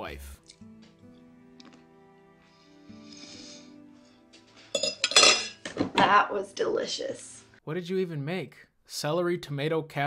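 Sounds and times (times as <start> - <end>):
cutlery clinking on ceramic plates: 4.7 - 5.9.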